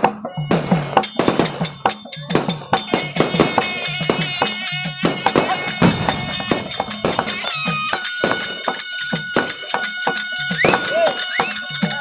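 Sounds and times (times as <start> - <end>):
drum beating quick rhythm: 0.0 - 12.0
metallic jingling: 0.2 - 12.0.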